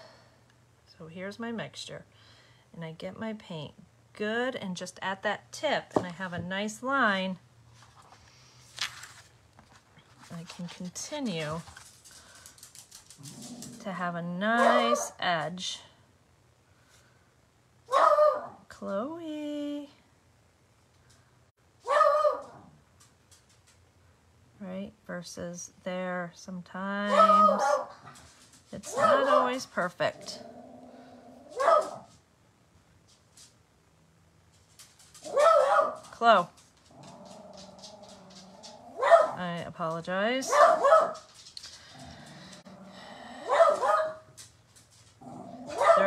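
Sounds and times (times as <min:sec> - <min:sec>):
dog barking: 0:14.6 - 0:15.2, 0:17.9 - 0:18.6, 0:21.8 - 0:22.7, 0:27.1 - 0:28.0, 0:28.9 - 0:29.6, 0:31.5 - 0:32.1, 0:35.2 - 0:36.1, 0:39.0 - 0:39.4, 0:40.5 - 0:41.3, 0:43.4 - 0:44.3, 0:45.7 - 0:46.0.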